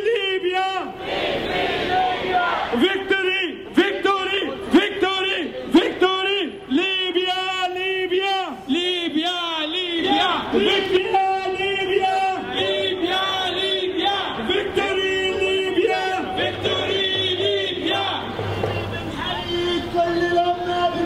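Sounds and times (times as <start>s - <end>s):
crowd chanting in unison: 0.8s - 2.8s, 9.8s - 19.4s.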